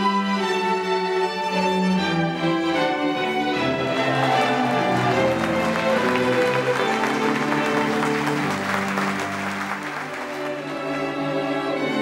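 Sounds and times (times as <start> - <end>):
slow bowed string chamber music: 0.0 - 12.0
audience applause: 3.7 - 11.1.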